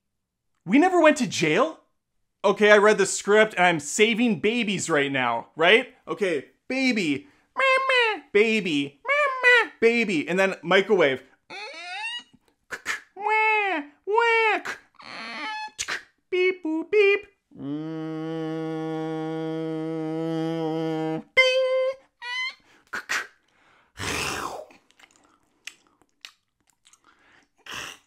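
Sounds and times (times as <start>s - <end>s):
man imitating baby crying: 7.6s - 9.9s, 11.5s - 23.4s
man humming: 11.5s - 23.3s.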